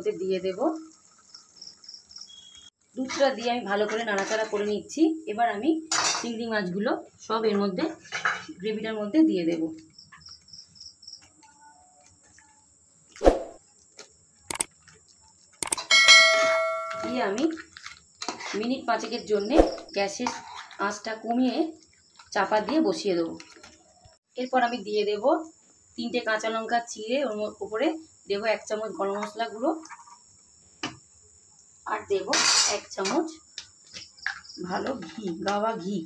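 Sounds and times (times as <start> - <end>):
cricket chirping: 0.7 - 2.8, 9.8 - 36.0
kitchenware knocking: 15.9 - 17.2
metal utensil clanging: 15.9 - 17.4
person's voice: 16.9 - 17.6.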